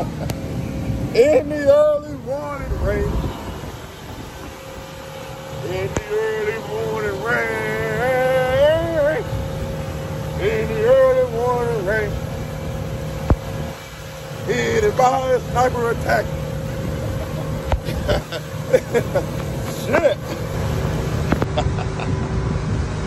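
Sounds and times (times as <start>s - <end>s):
outboard motor droning: 0.0s - 23.0s
man singing marching cadence: 5.6s - 9.3s.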